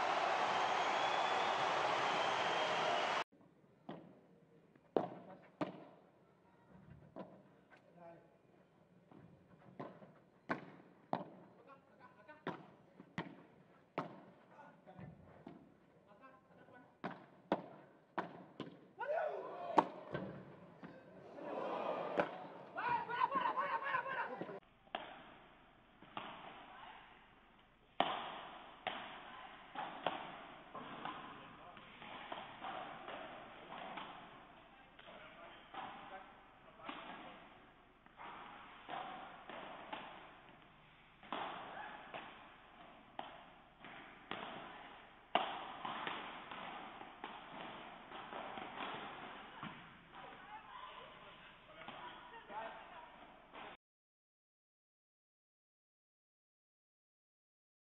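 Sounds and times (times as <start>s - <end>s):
spectators cheering and shouting: 0.0s - 3.2s, 19.0s - 20.2s, 21.2s - 24.6s.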